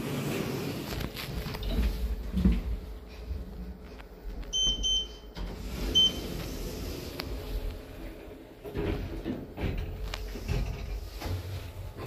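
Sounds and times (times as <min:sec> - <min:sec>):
lift car humming: 0:00.0 - 0:12.0
lift keypad beeps: 0:04.5 - 0:06.4.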